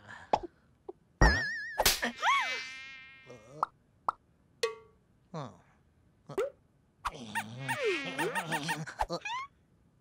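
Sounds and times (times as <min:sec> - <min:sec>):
cartoon character vocal sounds: 0:07.1 - 0:09.5.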